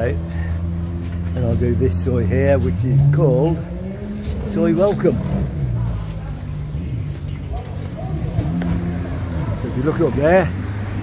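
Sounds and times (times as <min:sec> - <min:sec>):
vehicle engines running: 0:00.0 - 0:11.0.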